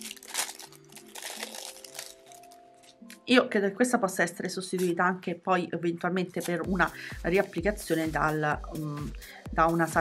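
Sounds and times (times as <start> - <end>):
plastic packet crinkling: 0.0 - 3.2
soft background music: 0.0 - 10.0.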